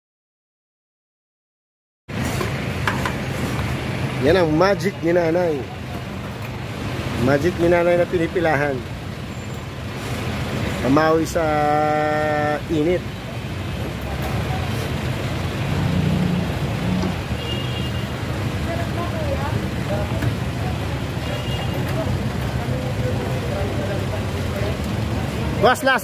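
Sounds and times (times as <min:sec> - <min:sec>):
road traffic rumble: 0:02.1 - 0:26.0
faint voices of people: 0:18.5 - 0:26.0.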